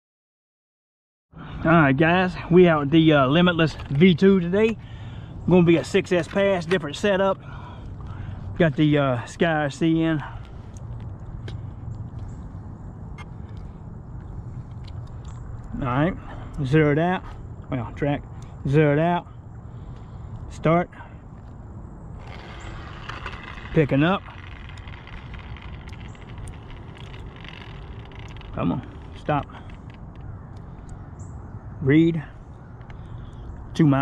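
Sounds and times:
low outdoor background rumble: 0:01.4 - 0:34.0.

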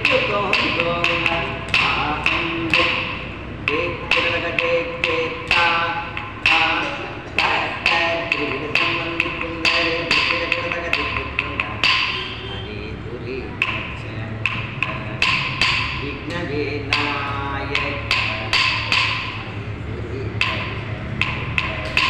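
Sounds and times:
sharp percussion strokes: 0:00.0 - 0:12.8, 0:13.5 - 0:22.0
held melodic tones: 0:00.0 - 0:22.0.

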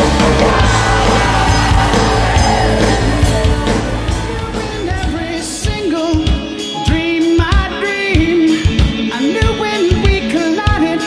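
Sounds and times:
loud rock band music: 0:00.0 - 0:11.0.

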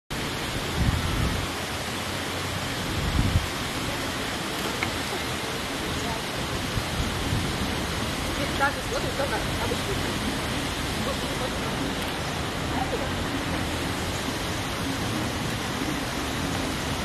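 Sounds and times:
wind buffeting microphone: 0:00.2 - 0:17.0.

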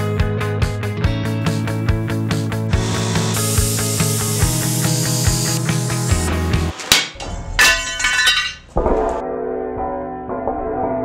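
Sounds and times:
background music with steady beat: 0:00.0 - 0:07.5.

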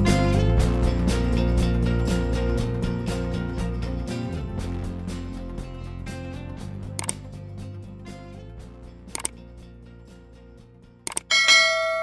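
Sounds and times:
soft outro music: 0:00.0 - 0:12.0
quick double click: 0:07.0 - 0:07.2, 0:09.1 - 0:09.4, 0:11.1 - 0:11.3
bright bell chime: 0:11.3 - 0:12.0.

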